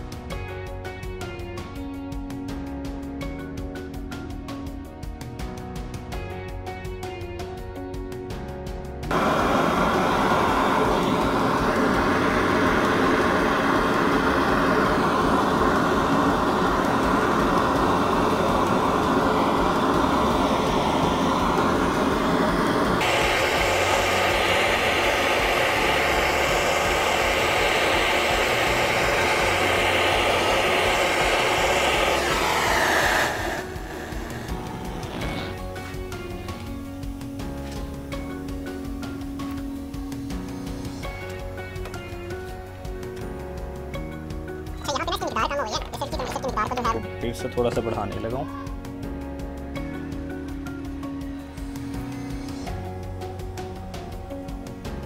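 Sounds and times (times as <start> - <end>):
soft background music: 0.0 - 55.0
gas torch hissing: 9.1 - 43.0, 51.1 - 55.0.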